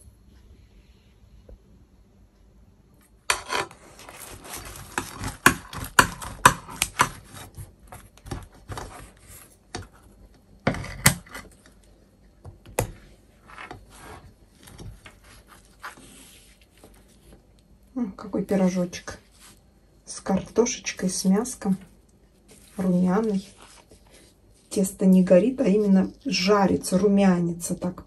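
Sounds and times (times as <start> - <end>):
scissors snipping pie crust: 3.3 - 10.1.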